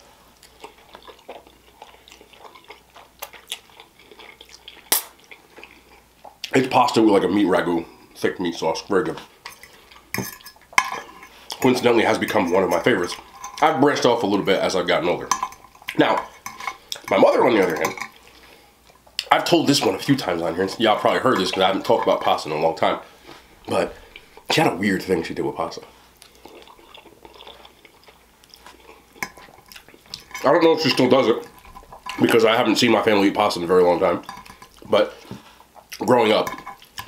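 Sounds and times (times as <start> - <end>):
wet chewing mouth sounds: 0.4 - 6.6, 26.1 - 30.4
fork scraping a plate: 9.5 - 13.7, 28.7 - 32.4.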